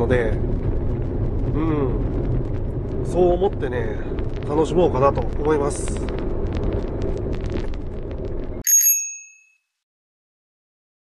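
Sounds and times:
bell ding: 8.6 - 9.7.

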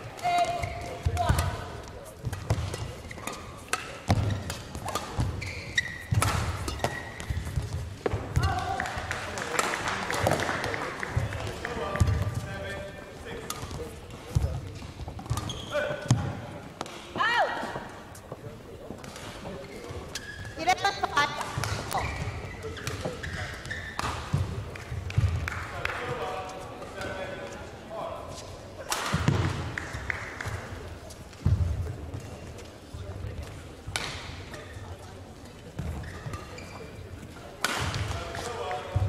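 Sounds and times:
voices in sports hall: 0.0 - 39.0
racket hitting shuttlecock: 2.2 - 10.8, 22.8 - 25.5, 33.9 - 34.6, 37.6 - 38.9.

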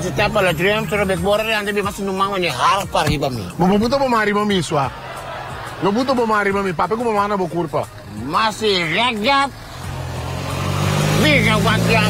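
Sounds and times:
man speaking: 0.0 - 4.8
vehicle engine humming: 0.0 - 12.0.

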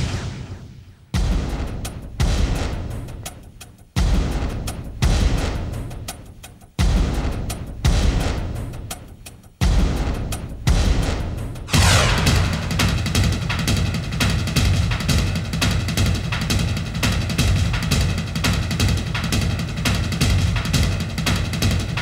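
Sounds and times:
dramatic score music with drums: 0.1 - 22.0.

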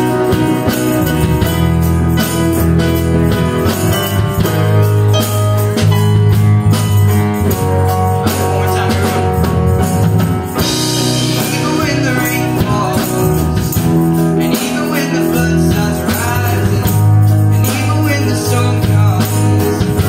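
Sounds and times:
electric bass line: 0.0 - 20.0
tambourine jingling: 0.0 - 20.0
person singing: 8.3 - 9.8, 11.2 - 20.0.

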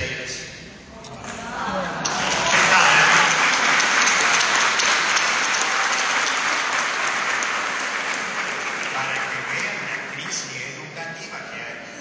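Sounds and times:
congregation applauding: 1.9 - 11.1.

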